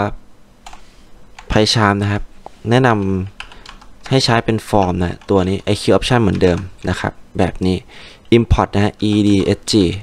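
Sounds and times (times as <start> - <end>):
computer keyboard keystrokes: 0.6 - 1.6, 3.0 - 4.3, 5.1 - 7.0
man speaking: 1.5 - 3.4, 4.0 - 10.0.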